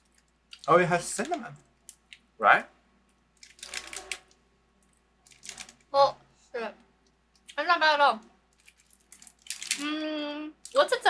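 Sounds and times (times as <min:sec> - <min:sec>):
crinkly wrapper and snack crackling: 0:03.4 - 0:04.3, 0:05.2 - 0:05.9, 0:08.5 - 0:09.9.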